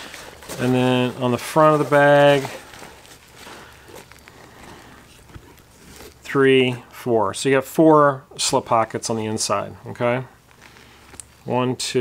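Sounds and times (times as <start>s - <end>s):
bag fabric rustling: 0.0s - 6.4s.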